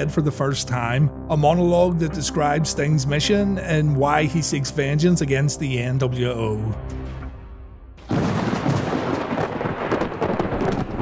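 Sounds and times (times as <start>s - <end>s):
heavy rain: 8.0s - 11.0s
thunder rumbling: 8.0s - 11.0s.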